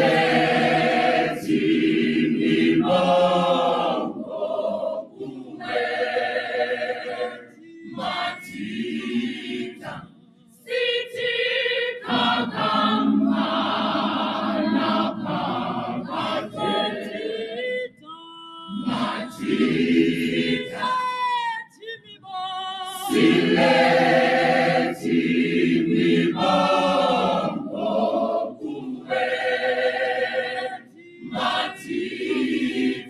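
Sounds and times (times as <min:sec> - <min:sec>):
gospel choir singing a cappella: 0:00.0 - 0:33.0.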